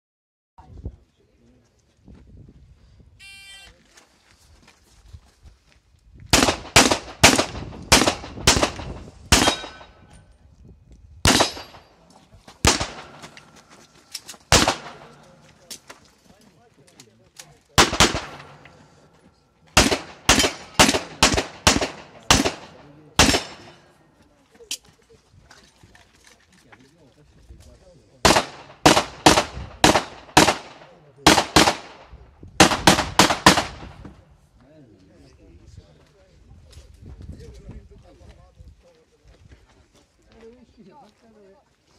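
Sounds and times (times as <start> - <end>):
pistol shots: 6.3 - 10.1, 11.2 - 12.0, 12.6 - 13.6, 14.5 - 15.5, 17.8 - 18.8, 19.8 - 23.8, 28.2 - 34.0.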